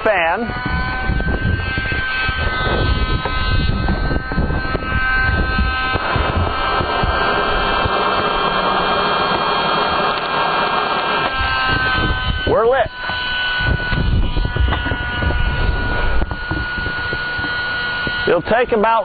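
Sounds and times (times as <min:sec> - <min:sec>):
small fan whining: 0:00.0 - 0:19.0.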